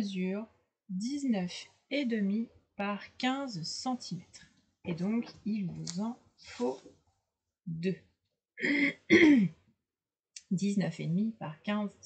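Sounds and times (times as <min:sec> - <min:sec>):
woman clearing her throat: 0:08.6 - 0:09.6.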